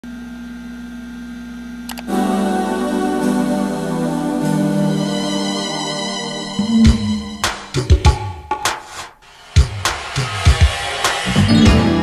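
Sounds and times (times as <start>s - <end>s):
desktop computer humming: 0.1s - 8.1s.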